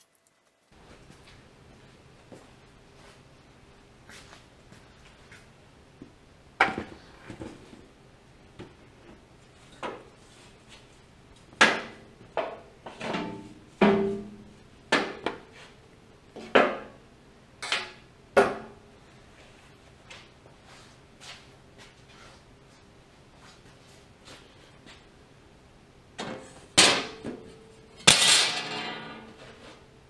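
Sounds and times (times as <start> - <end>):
metallic clanks and knocks: 28.0 - 29.6.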